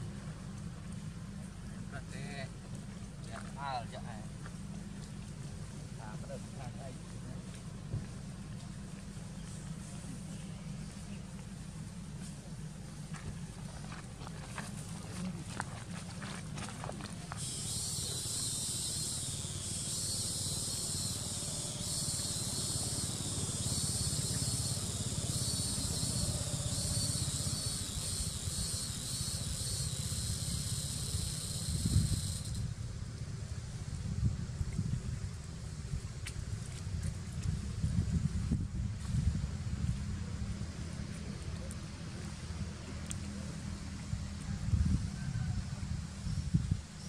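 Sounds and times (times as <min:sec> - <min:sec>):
high pulsing insect chorus: 0:00.0 - 0:47.0.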